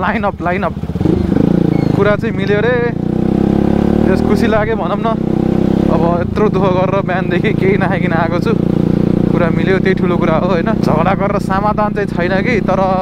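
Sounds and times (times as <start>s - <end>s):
man talking: 0.0s - 0.8s, 2.0s - 3.0s, 4.0s - 5.2s, 5.8s - 8.6s, 9.3s - 13.0s
motorcycle engine accelerating: 0.0s - 13.0s.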